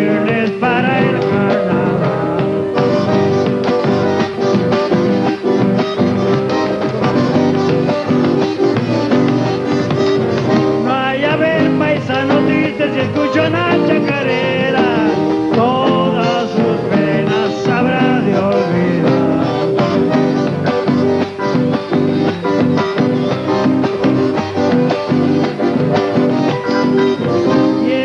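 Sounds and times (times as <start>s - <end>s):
drum rhythm: 0.0s - 28.0s
strummed acoustic guitar: 0.0s - 28.0s.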